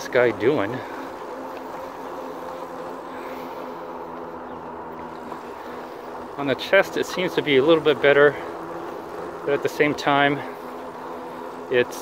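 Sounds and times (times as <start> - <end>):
electric motor whine: 0.0 - 12.0
tyres humming on pavement: 0.0 - 12.0.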